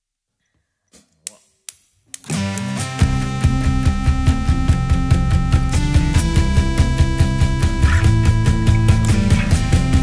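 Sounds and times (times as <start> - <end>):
drumsticks clicking together: 0.9 - 2.7
sustained keyboard chords: 2.2 - 10.0
band playing: 2.3 - 10.0.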